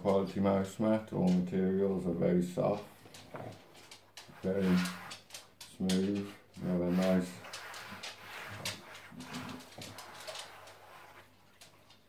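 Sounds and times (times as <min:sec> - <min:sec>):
hands scraping cloth mouse mat: 0:04.4 - 0:05.2, 0:06.6 - 0:11.3.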